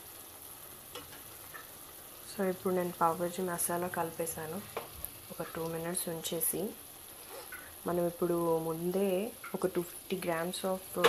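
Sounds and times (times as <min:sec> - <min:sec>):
food frying in a pan: 0:00.0 - 0:11.0
spatula scraping a pan: 0:07.1 - 0:07.7.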